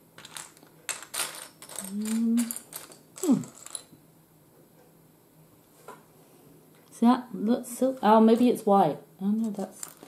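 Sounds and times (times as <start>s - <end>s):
plastic bricks clattering: 0.2s - 3.9s, 9.4s - 10.0s.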